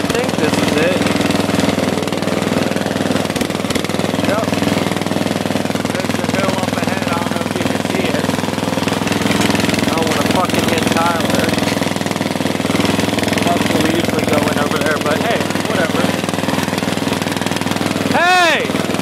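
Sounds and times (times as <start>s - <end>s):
riding lawn mower engine: 0.0s - 19.0s
second mower engine: 0.0s - 19.0s.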